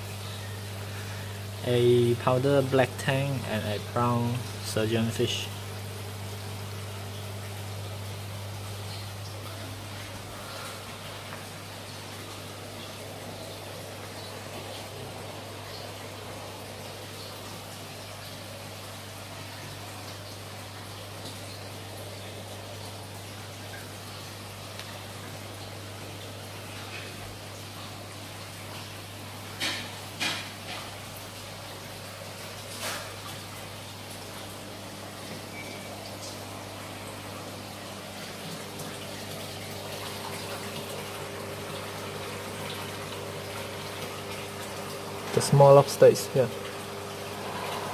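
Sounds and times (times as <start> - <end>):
pump humming: 0.0 - 47.9
water rushing in aquarium: 0.0 - 47.9.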